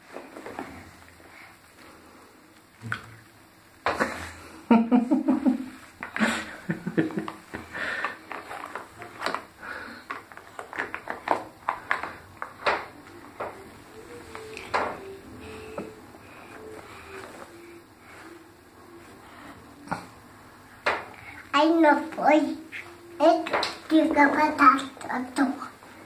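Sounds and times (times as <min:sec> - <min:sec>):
faint wavering hum: 0:00.0 - 0:26.0.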